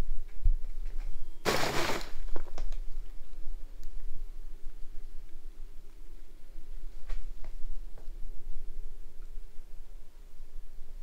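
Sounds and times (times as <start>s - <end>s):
plastic bag crinkling rustle: 1.5s - 2.7s.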